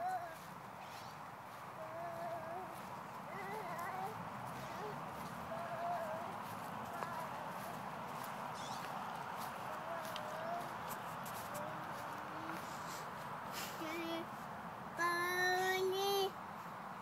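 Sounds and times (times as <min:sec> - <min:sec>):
steady background hiss: 0:00.0 - 0:17.0
toddler vocalizing: 0:01.8 - 0:07.7.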